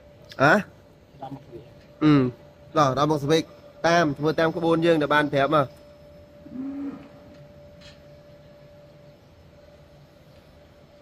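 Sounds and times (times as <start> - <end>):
faint steady hum: 0.0 - 11.0
low animal call: 6.4 - 7.5.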